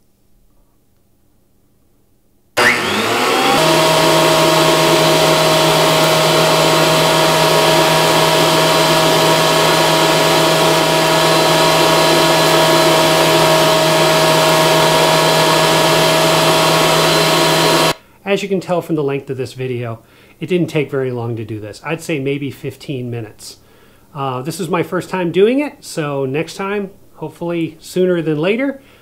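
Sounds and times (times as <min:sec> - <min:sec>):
thickness planer whining: 0:02.6 - 0:18.0.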